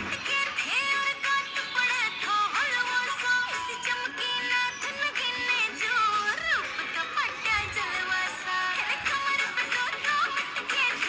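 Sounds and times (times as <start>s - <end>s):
high singing voice: 0.0s - 11.0s
song playing: 0.0s - 11.0s.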